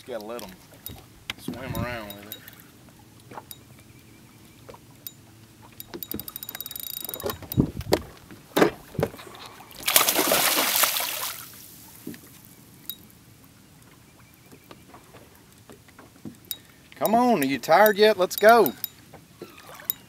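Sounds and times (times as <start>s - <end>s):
fishing reel ticking: 1.8s - 2.7s, 5.0s - 7.7s, 16.5s - 19.0s, 19.8s - 20.0s
fish splashing at surface: 9.8s - 11.9s.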